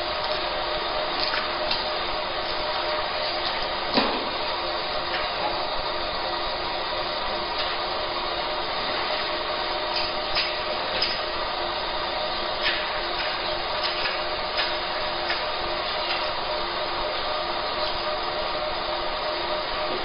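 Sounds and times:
laser marking machine whirring: 0.0 - 20.0.

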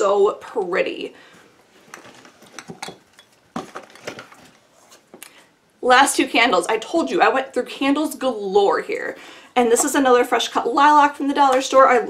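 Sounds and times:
glass jars clinking: 1.9 - 3.4.

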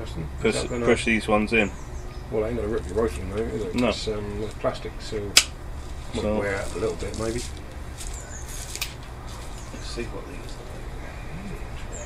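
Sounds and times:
faint bird chirps: 7.7 - 12.0.

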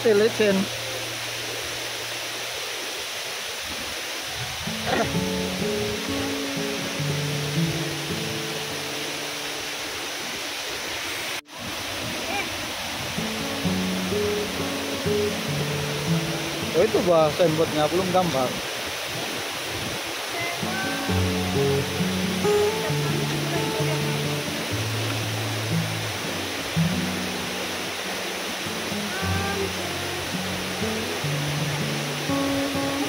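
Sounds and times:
waterfall rushing: 0.0 - 33.0
background music held notes: 4.7 - 9.8, 13.1 - 17.5, 20.6 - 33.0.

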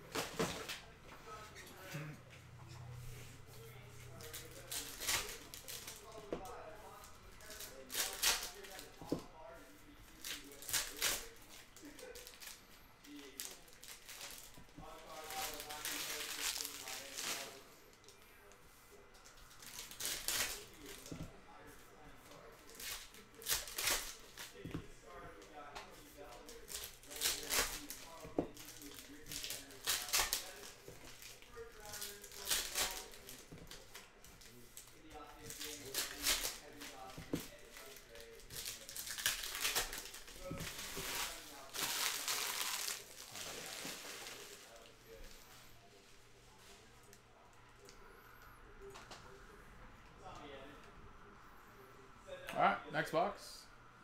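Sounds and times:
foil wrappers tearing and crinkling: 4.2 - 6.2, 7.4 - 9.0, 10.2 - 17.6, 19.5 - 21.1, 22.6 - 24.6, 26.2 - 45.3.

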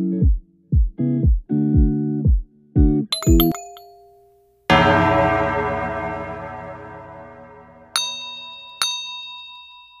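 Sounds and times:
notification bell dings: 3.1 - 4.4, 8.0 - 10.0.

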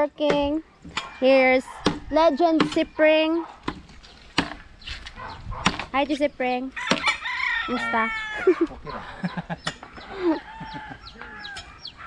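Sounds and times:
knife chopping into log: 3.6 - 4.6, 6.9 - 7.2
rooster crowing: 6.8 - 12.0.

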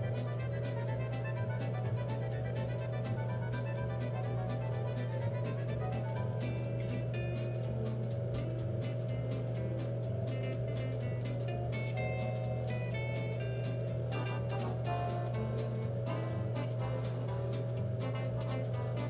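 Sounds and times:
background instrumental music: 0.0 - 19.0.

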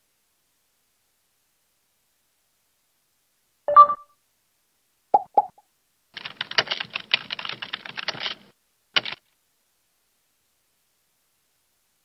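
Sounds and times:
quick blips: 5.2 - 5.6.

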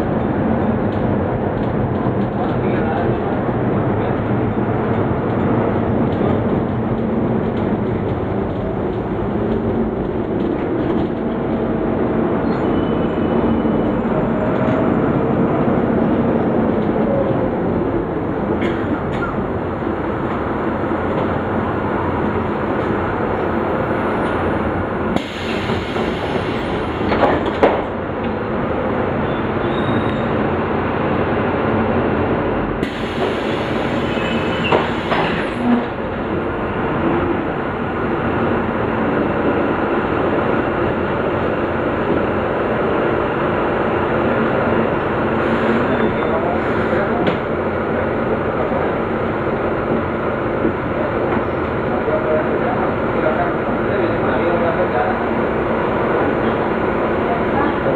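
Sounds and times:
bus diesel engine and road noise: 0.0 - 57.9.

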